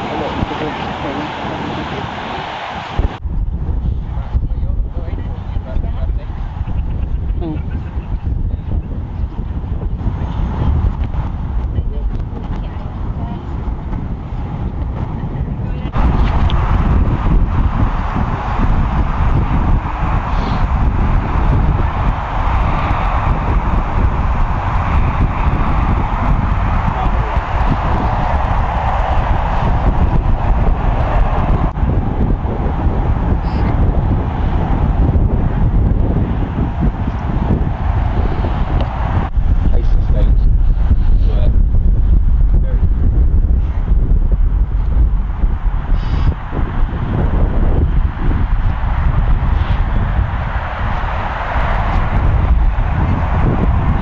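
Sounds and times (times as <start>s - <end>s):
wind rumbling on microphone: 0.0s - 54.0s.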